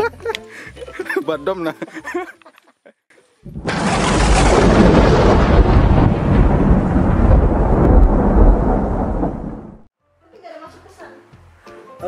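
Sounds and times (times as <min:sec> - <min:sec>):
heavy downpour: 0:03.5 - 0:09.9
low rumble of thunder: 0:03.5 - 0:09.9.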